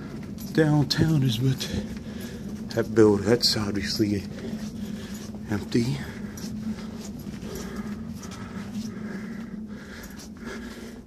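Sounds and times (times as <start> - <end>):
footsteps in a hallway: 0.0 - 11.0
steady low hum: 0.0 - 11.0
person breathing: 1.6 - 2.8, 4.2 - 11.0.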